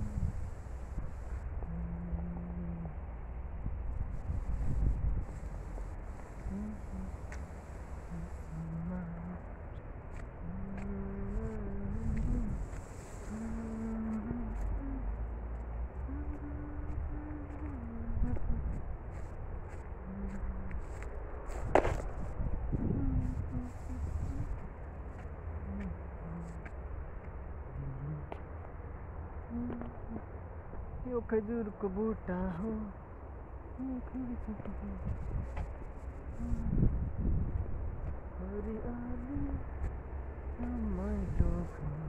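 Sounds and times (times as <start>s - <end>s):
person humming a slow tune: 0.0s - 0.8s, 1.5s - 3.4s, 4.1s - 21.0s, 22.4s - 24.8s, 25.6s - 26.8s, 27.6s - 28.5s, 29.4s - 30.4s, 33.7s - 35.5s, 36.3s - 37.4s, 38.4s - 42.0s
wind rumble on microphone: 0.0s - 42.0s.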